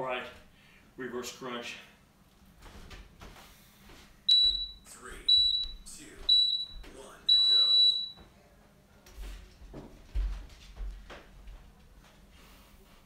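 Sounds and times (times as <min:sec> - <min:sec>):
long timer beep: 0:04.3 - 0:08.2
short high beeps: 0:07.3 - 0:08.2.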